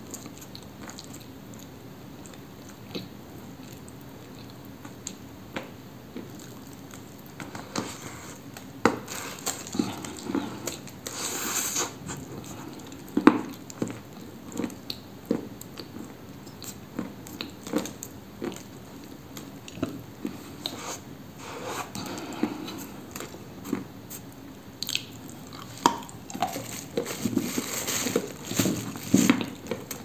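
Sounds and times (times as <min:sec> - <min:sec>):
person chewing crunchy cookie: 0:00.0 - 0:05.2, 0:06.1 - 0:30.0.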